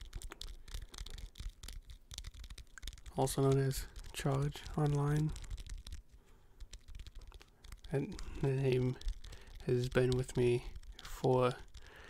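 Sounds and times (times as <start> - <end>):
fingertips tapping microphone windscreen: 0.0 - 12.0.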